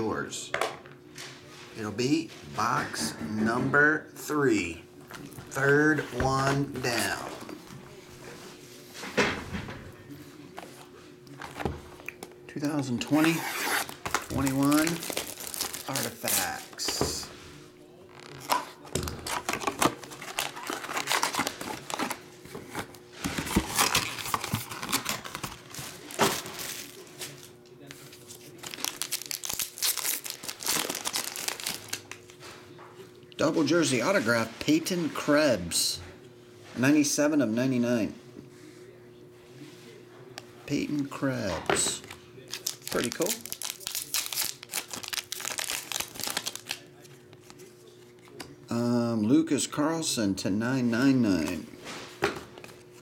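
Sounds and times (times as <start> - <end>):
foil packs crinkling: 13.0 - 17.3, 19.2 - 27.5, 28.2 - 32.3, 42.4 - 47.6
foil pack tearing open: 13.2 - 16.8, 19.2 - 22.2, 28.6 - 32.2, 42.5 - 46.9.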